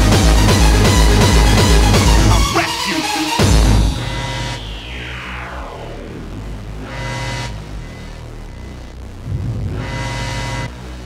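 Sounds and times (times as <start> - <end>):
swell of noise: 3.4 - 10.7
sustained low bass: 3.4 - 11.0
synth sweep falling in pitch: 3.8 - 10.7.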